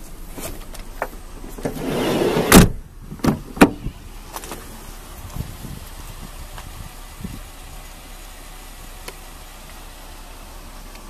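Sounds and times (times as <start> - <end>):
door shutting with heavy thump: 1.6 - 3.8
sliding door rolling on track: 1.7 - 2.6.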